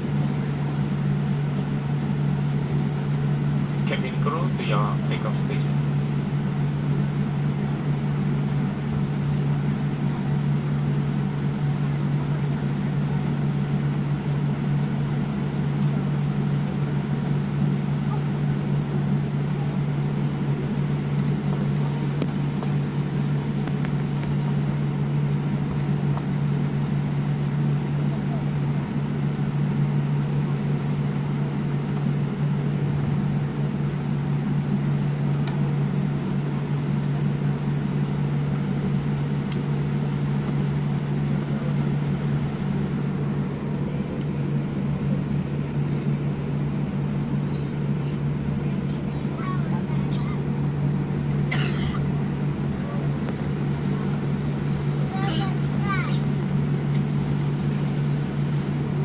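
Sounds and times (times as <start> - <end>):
jet engines humming in cabin: 0.0 - 59.0.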